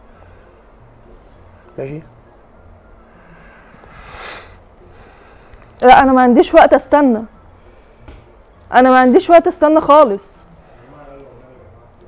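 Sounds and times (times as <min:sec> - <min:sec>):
soft breathy puff: 0:03.8 - 0:05.6.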